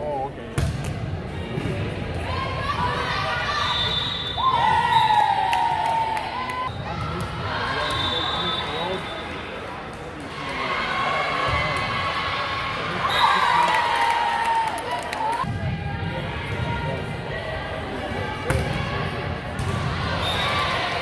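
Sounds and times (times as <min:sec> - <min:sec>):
spectators' voices: 0:00.0 - 0:21.0.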